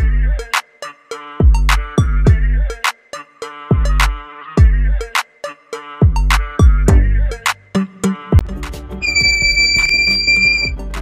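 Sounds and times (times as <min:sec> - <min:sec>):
alarm buzzer high tone: 0:09.0 - 0:10.8.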